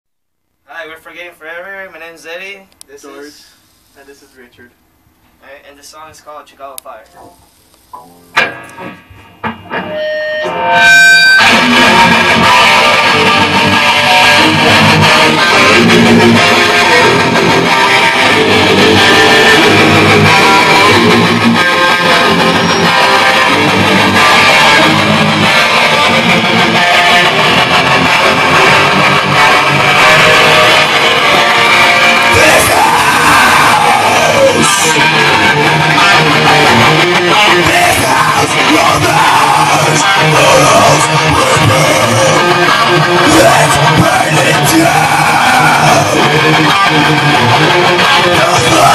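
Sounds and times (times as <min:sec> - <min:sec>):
electric guitars through amplifiers: 0:06.7 - 0:48.9
person singing: 0:11.5 - 0:48.9.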